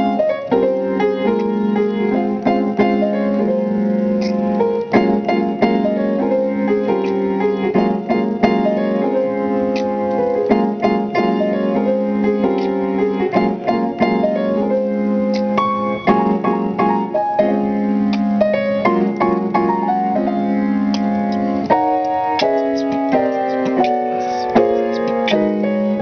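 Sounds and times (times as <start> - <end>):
grand piano playing: 0.0 - 26.0.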